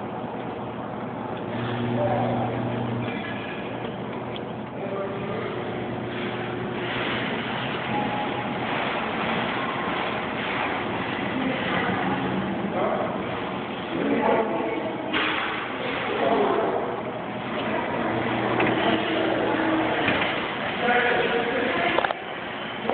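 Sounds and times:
busy store noise: 0:00.0 - 0:22.9
background voices: 0:01.4 - 0:22.9.

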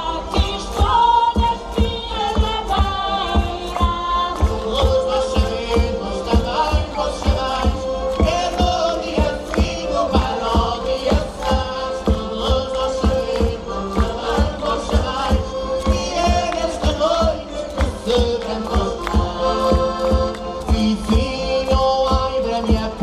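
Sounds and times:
folk group singing and playing: 0:00.0 - 0:23.0
steady percussion beat: 0:00.0 - 0:23.0.

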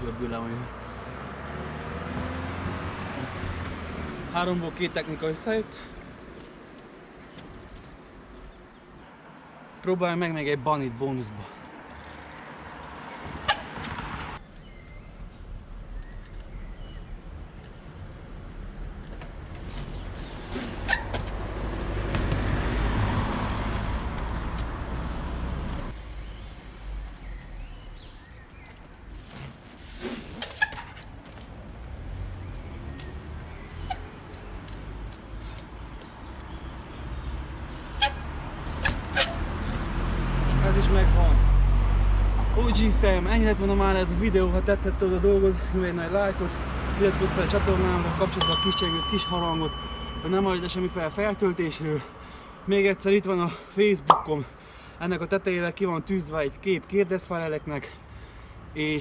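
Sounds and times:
road traffic passing: 0:00.0 - 0:59.0.

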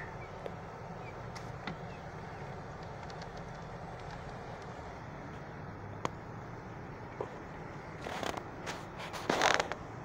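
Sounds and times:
creaking and rubbing noises: 0:08.0 - 0:09.9.

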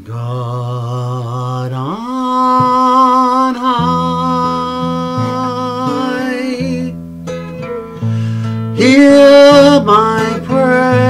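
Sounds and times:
acoustic guitar: 0:00.0 - 0:11.0
man singing with vibrato: 0:00.0 - 0:11.0.

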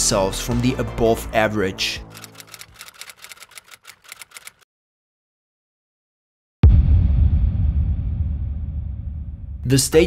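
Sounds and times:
typewriter key clicks: 0:02.2 - 0:04.6.

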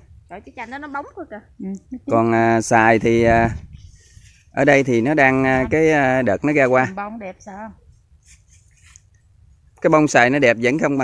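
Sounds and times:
man speaking: 0:02.0 - 0:03.6, 0:04.6 - 0:07.0, 0:09.8 - 0:11.0.

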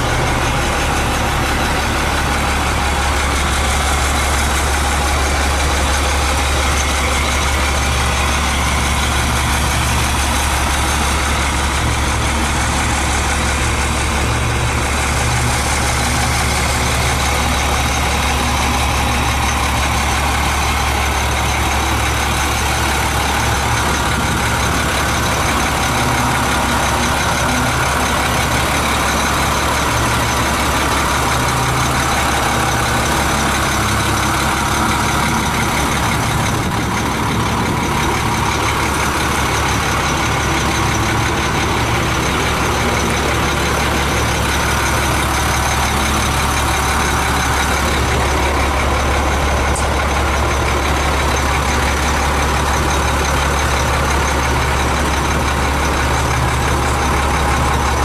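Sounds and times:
truck engine idling: 0:00.0 - 0:58.0.

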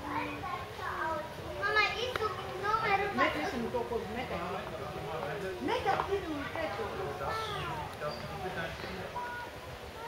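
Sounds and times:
children talking: 0:00.0 - 0:04.0, 0:05.6 - 0:10.0.

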